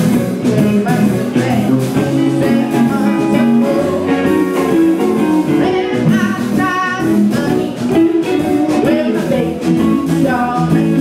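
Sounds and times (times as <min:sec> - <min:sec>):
electric guitar: 0:00.0 - 0:11.0
steady drum beat: 0:00.0 - 0:11.0
woman singing: 0:00.3 - 0:11.0.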